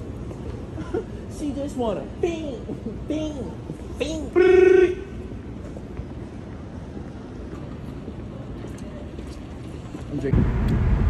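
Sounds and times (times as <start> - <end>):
city background rumble and hiss: 0.0 - 11.0.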